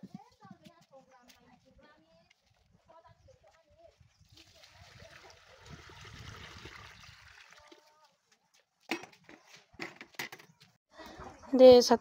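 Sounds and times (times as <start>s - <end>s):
water pouring into a wok: 4.4s - 7.8s.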